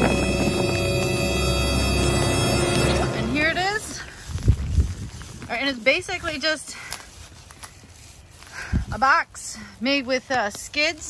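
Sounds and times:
footsteps on ground: 0.0 - 11.0.

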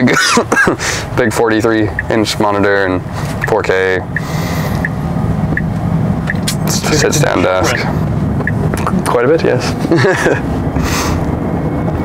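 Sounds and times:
car road and tyre noise: 0.0 - 12.0
turn signal ticking: 1.2 - 2.3, 3.3 - 9.0.

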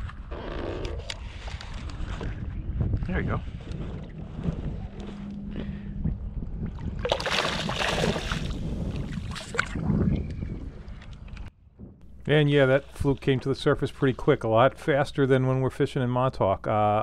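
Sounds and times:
wind rumble on microphone: 0.0 - 12.2
fish thrashing and splashing: 6.9 - 9.8.

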